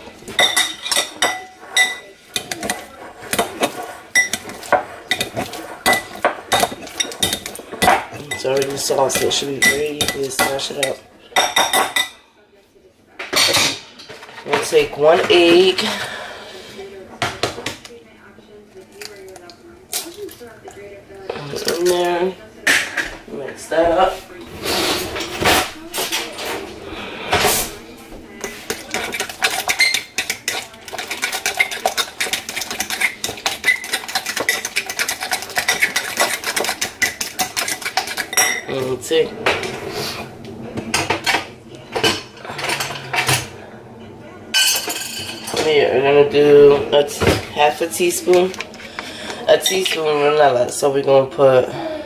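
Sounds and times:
metal spoon clinking in glass bowl: 28.9 - 38.7.

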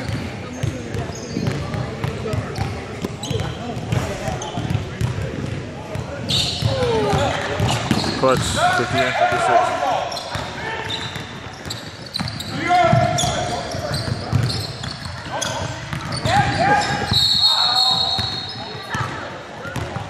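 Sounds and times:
basketball bouncing: 0.0 - 8.6, 10.3 - 13.4, 14.0 - 17.2, 18.2 - 19.2
players shouting: 6.6 - 11.0
high whistle: 17.1 - 18.4.

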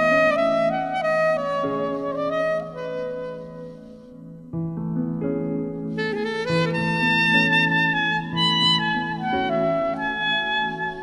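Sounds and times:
saxophone melody: 0.0 - 4.4, 5.9 - 11.0.

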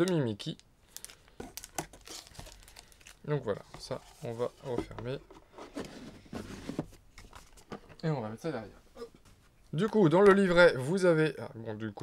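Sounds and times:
cardboard rubbing: 3.6 - 7.0.

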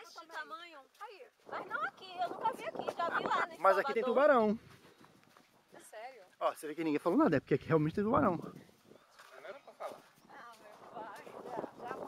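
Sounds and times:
flip-flop footsteps on sand: 0.0 - 6.3, 8.4 - 12.0.

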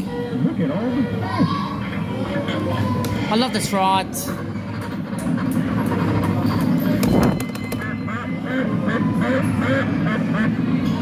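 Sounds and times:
kiddie ride music: 4.4 - 11.0.

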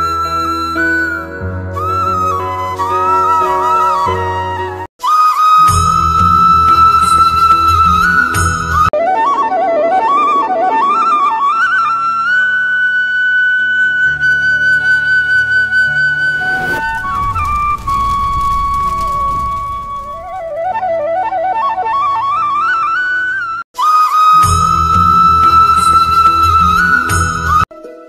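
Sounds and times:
flute melody: 0.0 - 28.0
rising whoosh: 15.7 - 20.6.

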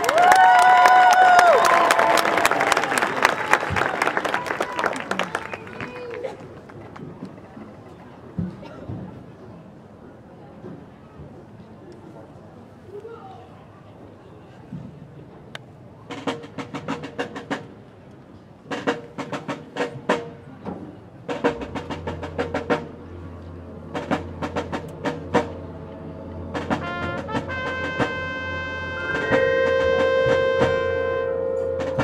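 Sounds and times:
brass chords: 21.3 - 32.0
low sustained drone: 21.6 - 32.0
snare drum rolls: 29.0 - 31.0.

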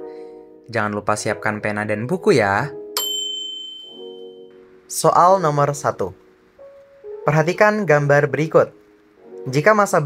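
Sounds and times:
soft background music chords: 0.0 - 10.0
bright chime ringing: 3.0 - 4.6.

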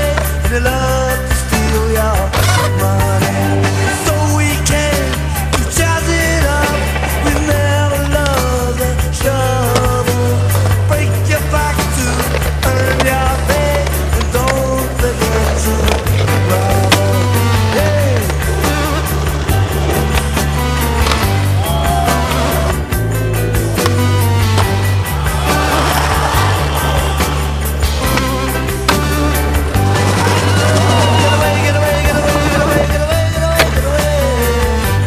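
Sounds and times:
bass line: 0.0 - 35.0
driving drum beat: 0.0 - 35.0
rock music: 0.0 - 35.0.

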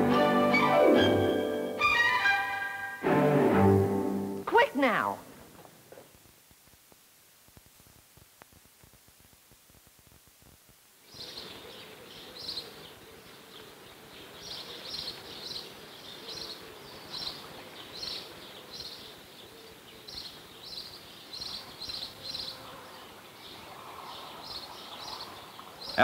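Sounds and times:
light hiss: 4.1 - 26.0.

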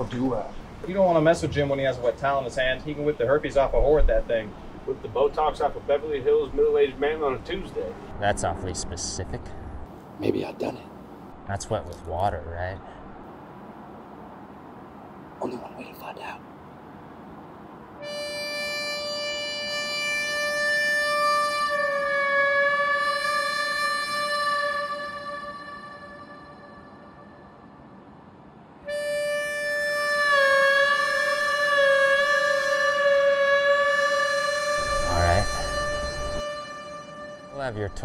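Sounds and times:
harmonica holding long notes: 18.0 - 27.8, 28.8 - 38.0.

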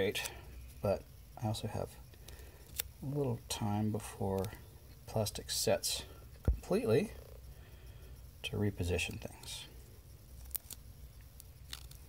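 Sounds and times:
low steady hum: 0.0 - 12.0
masking tape crinkling: 10.3 - 12.0
small plastic clicks: 10.4 - 12.0.

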